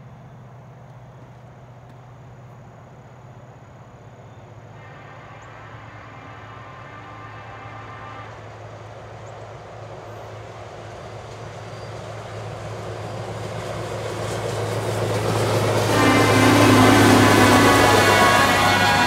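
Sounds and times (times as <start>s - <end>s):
diesel engine humming: 12.2s - 19.0s
loud high multi-pitch tone: 15.9s - 19.0s.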